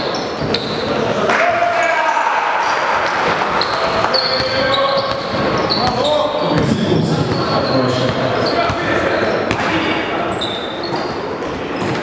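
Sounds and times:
voices in the hall: 0.0 - 12.0
basketball bouncing on court: 3.6 - 10.0.

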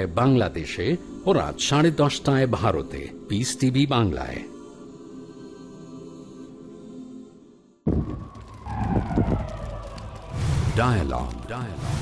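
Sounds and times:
falling tone: 7.9 - 10.8
low rumble: 7.9 - 12.0.

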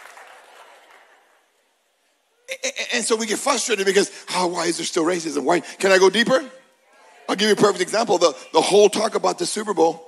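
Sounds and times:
faint audience applause: 0.0 - 1.5.

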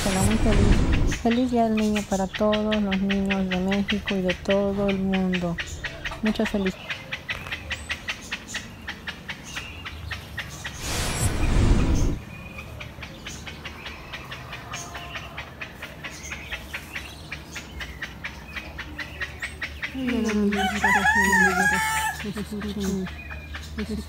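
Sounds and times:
loud rushing noise: 0.0 - 1.5, 10.7 - 12.3
small birds chirping: 0.0 - 24.0.

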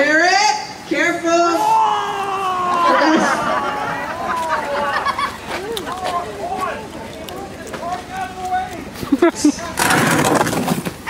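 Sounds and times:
person yelping in pain: 1.6 - 4.8
people laughing: 2.2 - 9.8.

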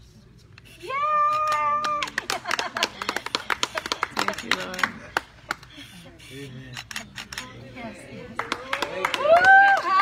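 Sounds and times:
hands clapping: 1.4 - 5.7, 8.4 - 10.0.

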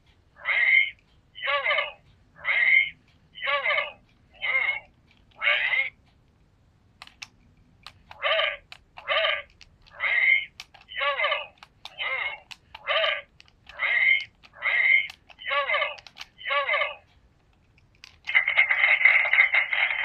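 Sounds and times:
electronic toy sounds: 0.4 - 6.0, 7.9 - 17.1, 18.0 - 20.0.

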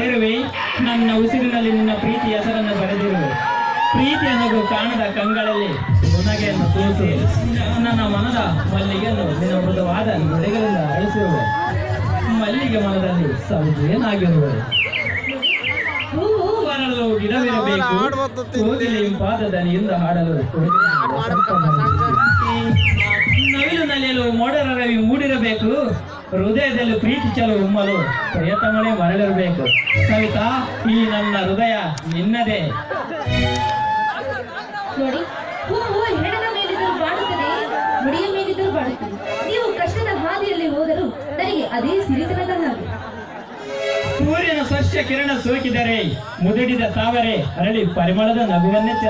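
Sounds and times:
background chatter: 0.0 - 49.0
high warbling chirps: 29.6 - 30.5.

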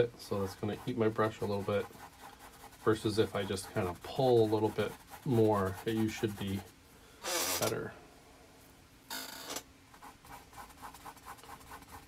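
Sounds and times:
paintbrush strokes on canvas: 0.3 - 6.8, 10.0 - 12.0.

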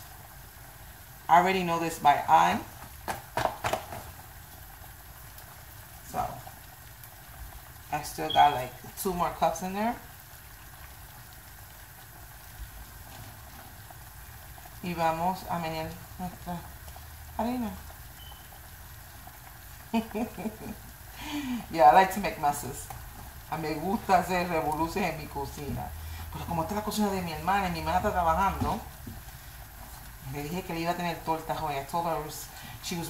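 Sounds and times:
woman's voice: 1.3 - 2.7, 7.9 - 10.0, 14.8 - 16.7, 17.4 - 17.8, 20.0 - 22.9, 23.5 - 28.9, 30.2 - 33.0.

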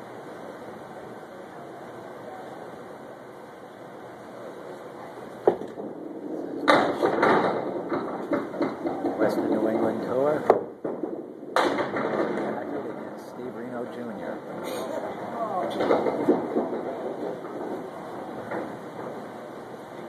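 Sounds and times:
bowling ball rolling on wooden lane: 5.4 - 20.0
bowling pins clattering: 5.4 - 20.0
voices: 12.2 - 18.5.

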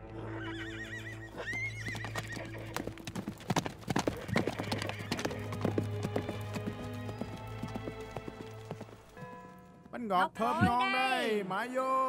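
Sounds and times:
horse hooves clip-clopping: 1.3 - 10.0
music of long held notes: 2.1 - 9.9.

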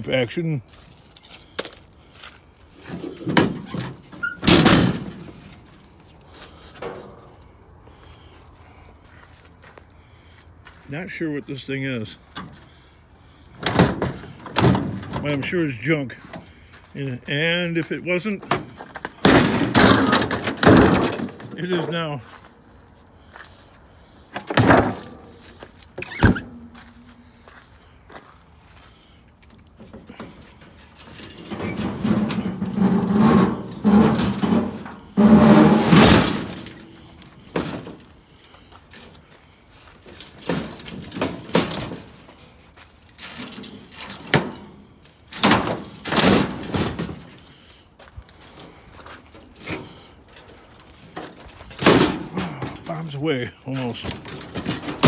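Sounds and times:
scrap metal thunks and knocks: 2.8 - 5.9, 13.5 - 15.6, 18.2 - 22.1, 24.4 - 27.2, 29.8 - 47.7, 48.4 - 55.0
metal scraping and squealing: 30.7 - 37.6.

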